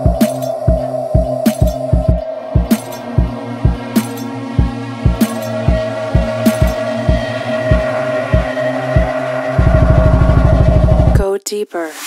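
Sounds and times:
kick drum: 0.0 - 3.9, 4.6 - 6.3, 8.4 - 9.1
sustained synth chord: 0.0 - 11.2
fast buzzing bass roll: 4.6 - 11.2.

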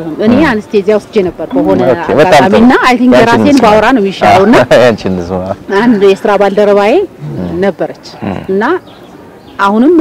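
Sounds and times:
woman talking into microphone: 0.0 - 4.4, 5.7 - 8.8.

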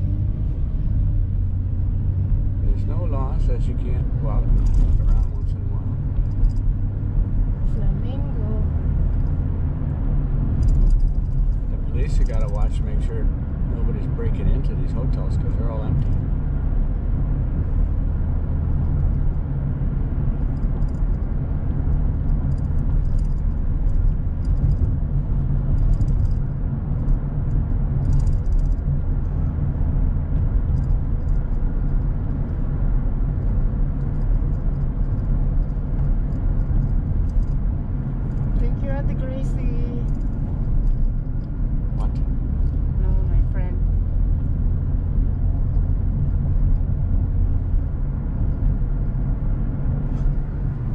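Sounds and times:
car engine and tyres rumbling: 0.0 - 50.9.

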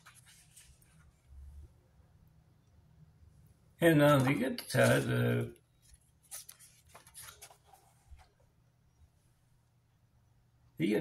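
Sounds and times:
paper card rustling: 0.0 - 1.3, 4.0 - 8.4.

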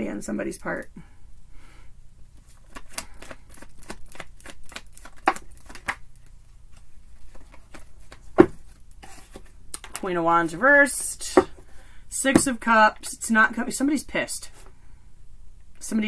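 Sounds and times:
cards being shuffled: 2.4 - 10.0.

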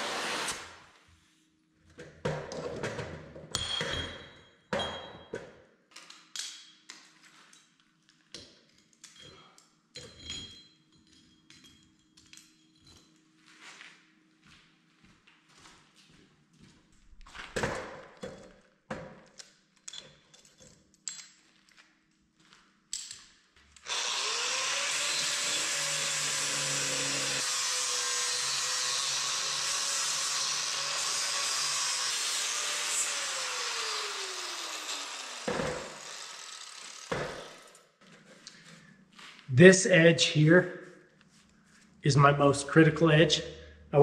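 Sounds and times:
angle grinder grinding steel: 23.8 - 37.8.

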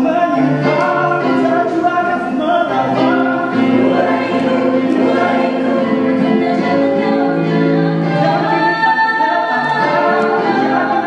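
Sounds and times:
mixed vocal group singing in harmony: 0.0 - 11.0.

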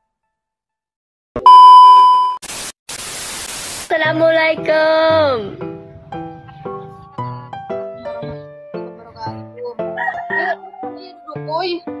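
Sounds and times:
steady electronic beep: 1.4 - 2.4
white-noise hiss bursts: 2.4 - 3.9.

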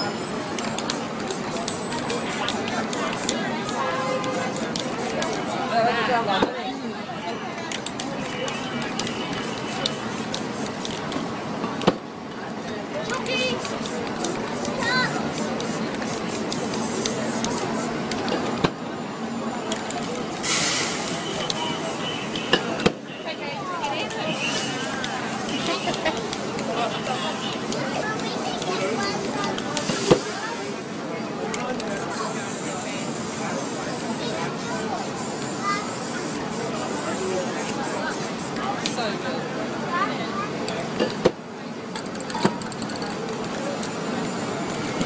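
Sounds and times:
spray paint can hissing: 0.5 - 5.5, 7.8 - 11.2, 13.2 - 18.3, 19.8 - 22.6, 24.3 - 30.8, 31.8 - 38.9, 42.2 - 45.0.

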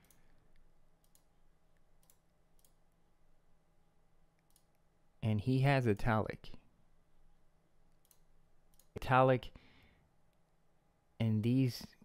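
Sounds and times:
faint computer mouse clicks: 0.0 - 1.3, 8.0 - 8.9.

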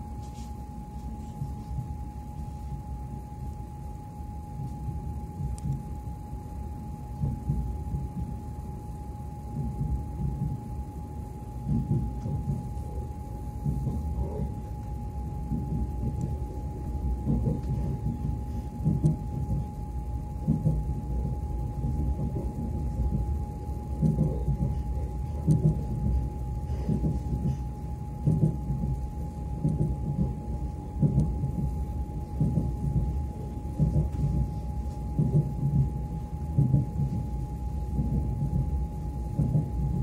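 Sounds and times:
train running rumble: 9.4 - 40.0.

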